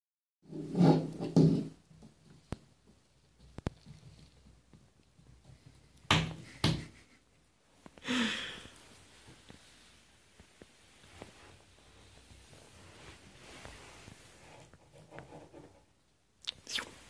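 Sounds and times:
hollow knocks in a bathtub: 0:00.7 - 0:02.2.

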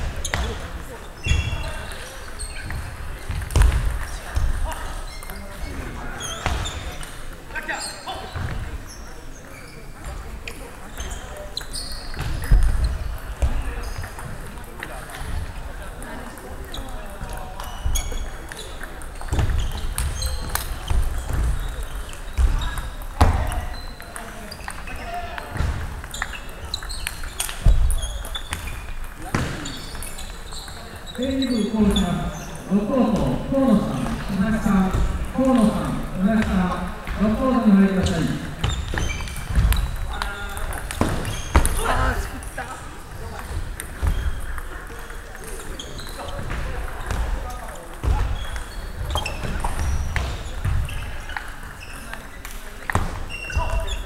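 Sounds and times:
shoes squeaking on floor: 0:00.0 - 0:15.4, 0:16.4 - 0:54.0
background chatter: 0:00.0 - 0:54.0
murmur of voices: 0:00.0 - 0:54.0
table tennis balls clicking: 0:13.9 - 0:32.0, 0:38.7 - 0:42.2
table tennis ball bouncing: 0:38.6 - 0:41.9.

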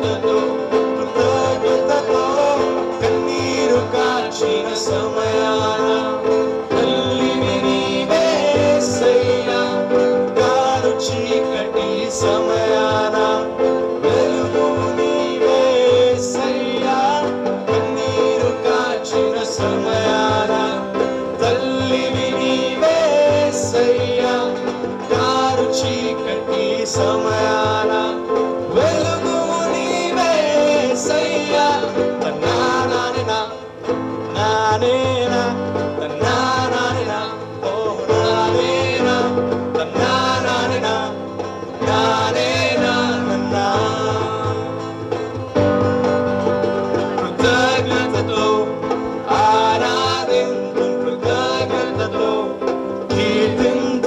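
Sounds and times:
choir singing: 0:00.0 - 0:34.1, 0:34.8 - 0:54.0
hand drum beat: 0:00.0 - 0:54.0
keyboard: 0:00.0 - 0:54.0
strummed acoustic guitar: 0:00.0 - 0:54.0.

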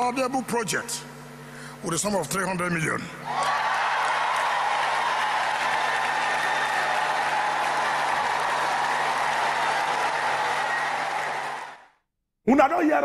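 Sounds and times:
audience applauding: 0:03.3 - 0:12.0.

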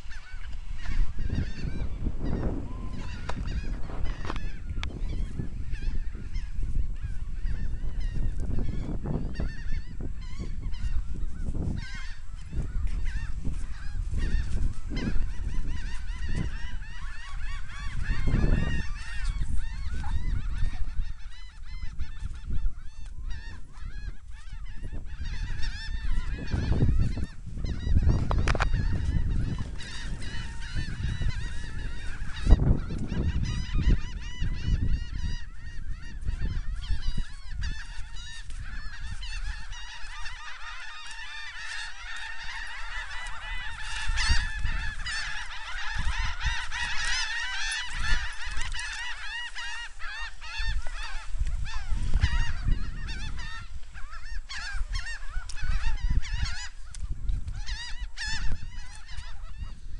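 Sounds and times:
flock of birds calling: 0:00.0 - 0:59.9.

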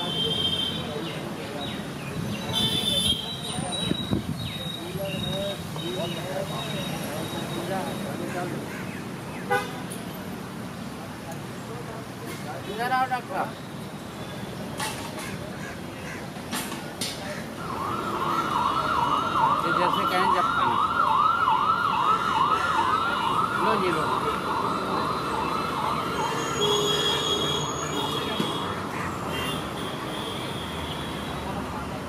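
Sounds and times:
street traffic hum: 0:00.0 - 0:32.0
vehicle horn toot: 0:26.3 - 0:31.5.

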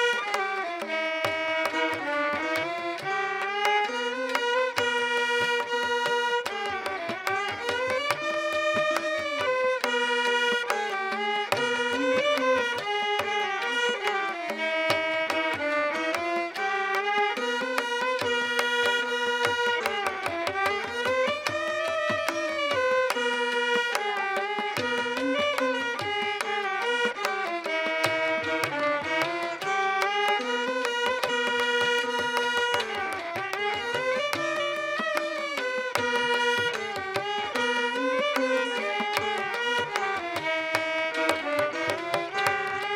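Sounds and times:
violin melody with gliding ornaments: 0:00.0 - 0:42.9.

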